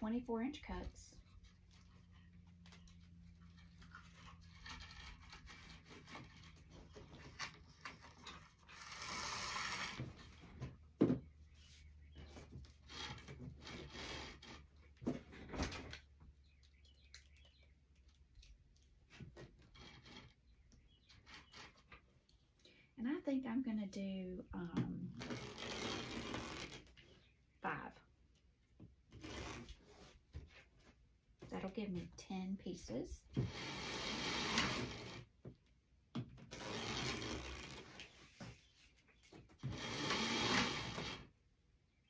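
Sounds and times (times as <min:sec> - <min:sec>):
mesh rustling and scraping: 0:01.1 - 0:16.4, 0:25.1 - 0:27.4, 0:29.1 - 0:31.0, 0:33.4 - 0:35.3, 0:36.4 - 0:41.3.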